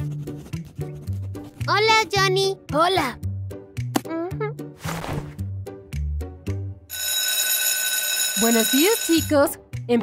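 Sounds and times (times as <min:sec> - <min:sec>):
light background music: 0:00.0 - 0:10.0
school bell ringing: 0:06.9 - 0:09.5.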